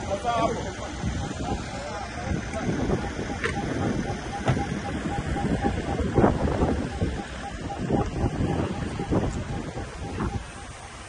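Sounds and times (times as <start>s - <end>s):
car engines running: 0.0s - 11.0s
voices: 0.0s - 11.0s
wind buffeting microphone: 0.0s - 11.0s.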